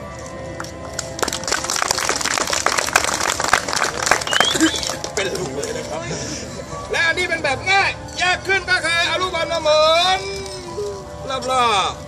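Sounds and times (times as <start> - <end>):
background music with held notes: 0.0 - 12.0
audience clapping: 0.9 - 5.8.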